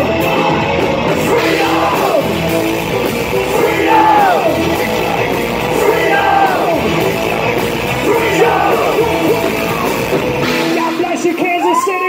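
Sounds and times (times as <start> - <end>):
live rock band playing: 0.0 - 12.0
yelled voices: 1.1 - 10.4.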